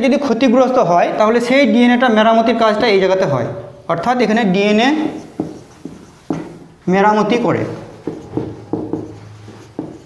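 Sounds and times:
marker writing on whiteboard: 0:04.6 - 0:10.0.

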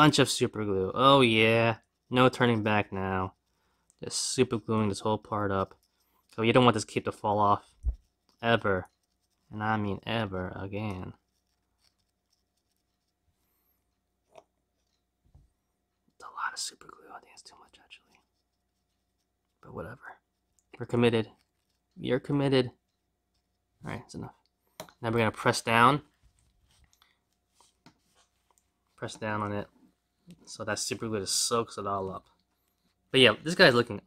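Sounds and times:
soft handling ticks: 0:00.0 - 0:34.0.

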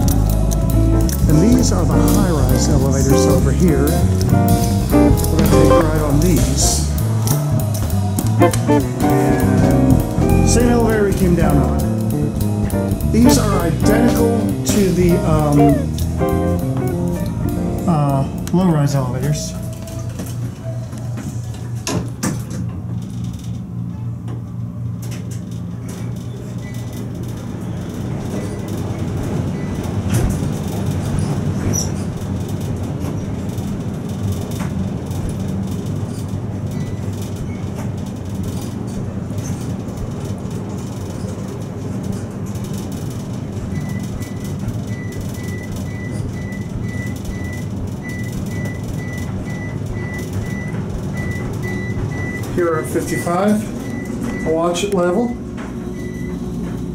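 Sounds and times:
elevator rumble and air rush: 0:00.0 - 0:23.9, 0:25.5 - 0:56.9.

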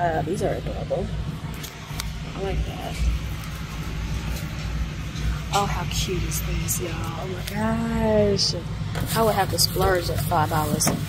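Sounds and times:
faint store background noise: 0:00.0 - 0:11.0.

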